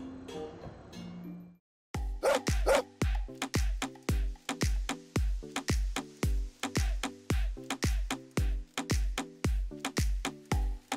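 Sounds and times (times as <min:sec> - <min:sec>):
upbeat music with kick drum: 0:02.0 - 0:10.9
small dog barking: 0:02.2 - 0:02.9.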